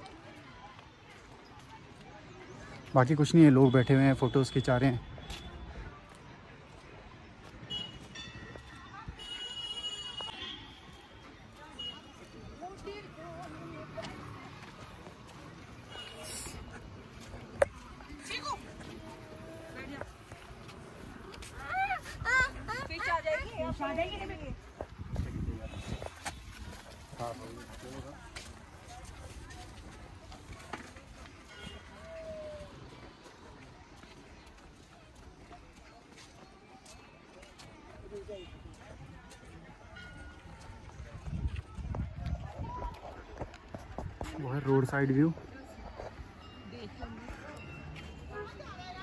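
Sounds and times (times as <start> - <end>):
footsteps on paved path: 0.0 - 49.0
faint background voices: 5.2 - 49.0.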